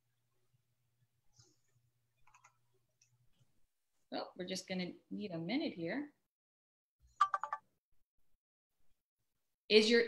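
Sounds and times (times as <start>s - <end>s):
electronic alert beeps: 7.2s - 7.6s.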